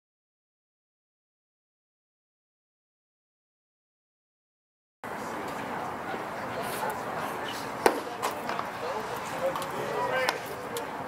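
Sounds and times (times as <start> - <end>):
murmur of voices: 5.1 - 11.0.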